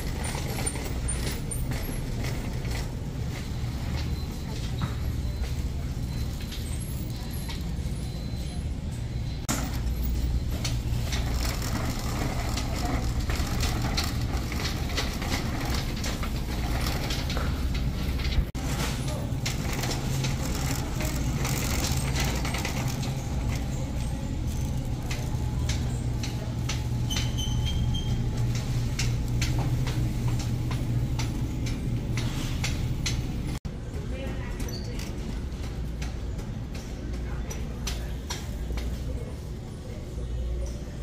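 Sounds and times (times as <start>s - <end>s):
cart basket rattling: 0.0s - 8.5s, 9.5s - 39.5s
shopping cart wheels rumbling: 0.0s - 41.0s.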